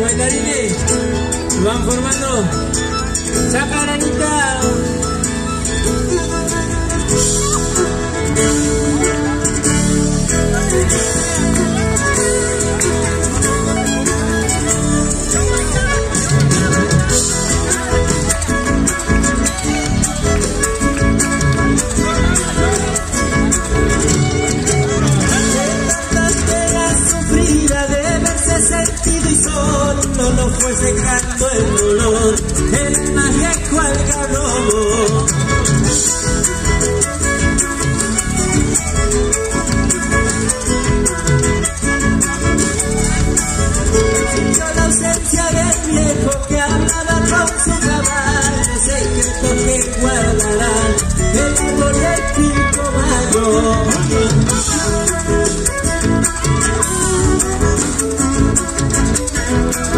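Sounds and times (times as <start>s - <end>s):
guitar strumming: 0.0s - 59.9s
rattle percussion beat: 0.0s - 59.9s
violin playing dance music: 0.0s - 59.9s.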